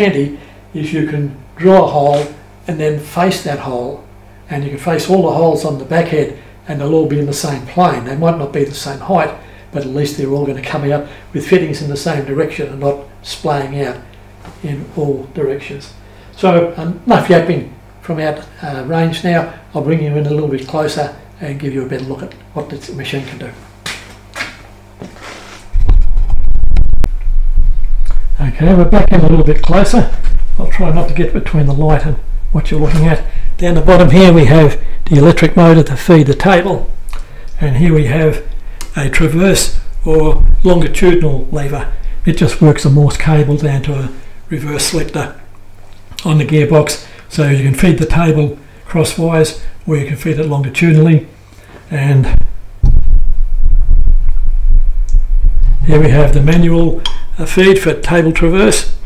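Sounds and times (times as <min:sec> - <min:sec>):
handling rumble on microphone: 0:25.0 - 0:43.8, 0:52.2 - 0:57.4.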